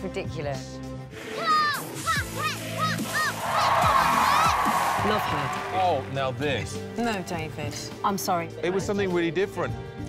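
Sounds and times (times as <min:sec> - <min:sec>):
audience cheering and applause: 0:01.4 - 0:07.0.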